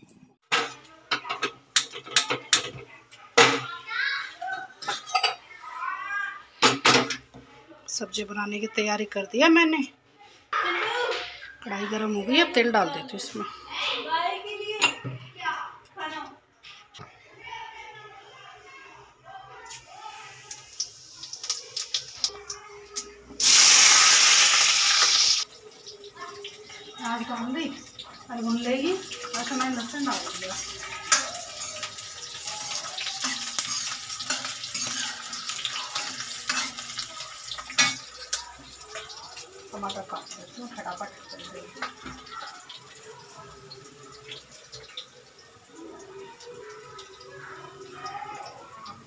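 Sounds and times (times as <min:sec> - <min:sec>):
metal cookware clanking: 0:00.4 - 0:02.8, 0:04.7 - 0:05.4, 0:21.4 - 0:43.0
seeds crackling in hot oil: 0:19.7 - 0:49.0.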